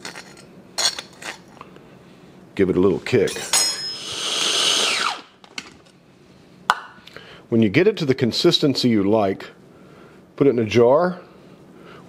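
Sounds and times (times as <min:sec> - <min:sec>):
food processor motor whine: 0:04.0 - 0:05.4.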